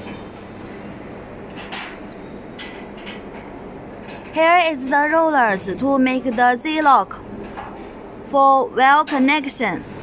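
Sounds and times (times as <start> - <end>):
factory machinery hum and rumble: 0.0 - 10.0.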